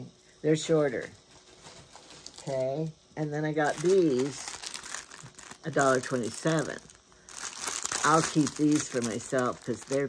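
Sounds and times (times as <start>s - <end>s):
plastic packaging crinkling: 1.4s - 2.6s, 3.6s - 10.0s.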